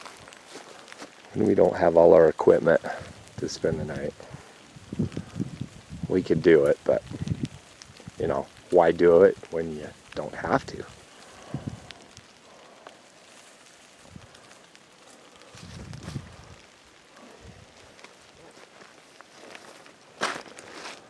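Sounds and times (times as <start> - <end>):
footsteps through dry grass: 0.0 - 21.0.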